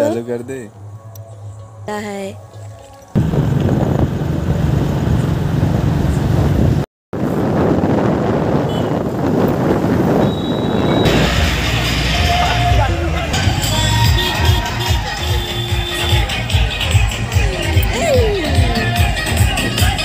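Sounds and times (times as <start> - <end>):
wind rumble on microphone: 3.2 - 11.2
crowd noise: 10.8 - 20.0
loud music: 11.1 - 20.0.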